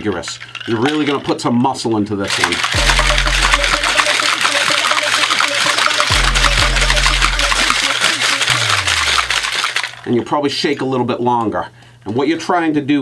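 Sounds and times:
ice rattling in cocktail shaker: 0:00.0 - 0:10.3
background music with deep bass: 0:02.7 - 0:07.9.

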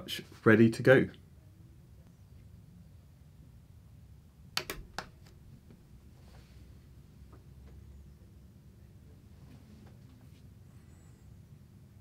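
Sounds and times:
switch clicks: 0:04.6 - 0:05.3.

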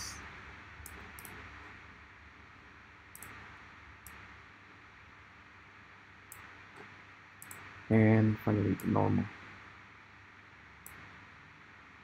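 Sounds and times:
faint room hiss: 0:00.0 - 0:12.0
computer mouse click: 0:00.8 - 0:01.4, 0:03.1 - 0:04.2, 0:06.3 - 0:07.7, 0:10.8 - 0:11.1.

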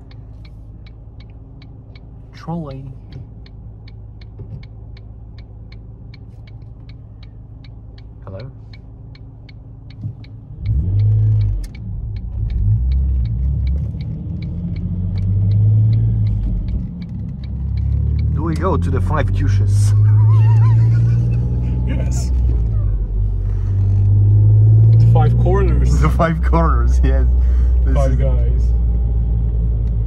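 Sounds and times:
car engine: 0:00.0 - 0:30.0
turn signal ticking: 0:00.0 - 0:30.0.

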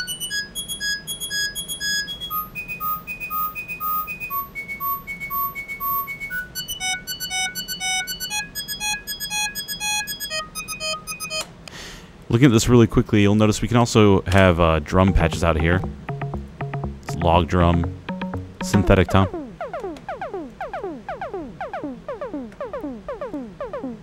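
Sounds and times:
high-pitched synthesizer notes: 0:00.0 - 0:11.5, 0:14.8 - 0:24.0.

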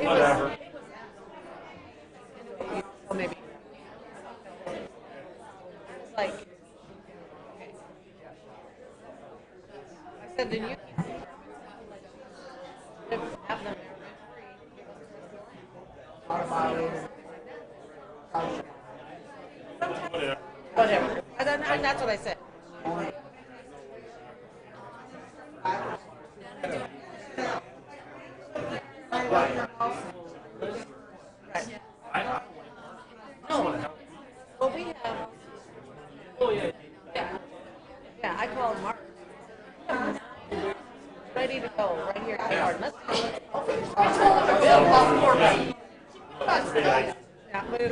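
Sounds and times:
people chattering: 0:00.0 - 0:47.9
people talking indistinctly: 0:00.0 - 0:47.9.

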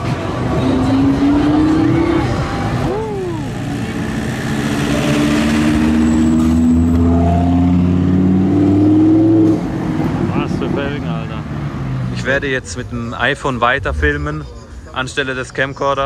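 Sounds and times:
sports car engine revving: 0:00.0 - 0:12.2.

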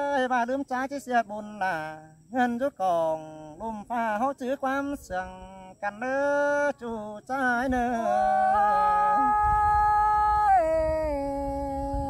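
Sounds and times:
man singing a low note: 0:01.2 - 0:12.0
woman singing a long note: 0:07.8 - 0:12.0.

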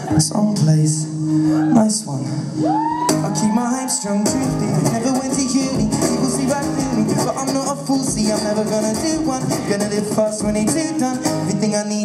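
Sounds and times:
man rapping: 0:03.3 - 0:12.0
acoustic guitar strummed: 0:04.1 - 0:12.0.

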